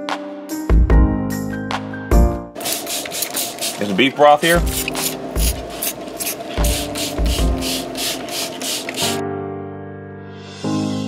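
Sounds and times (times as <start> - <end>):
background music: 0.0 - 2.6, 3.8 - 11.0.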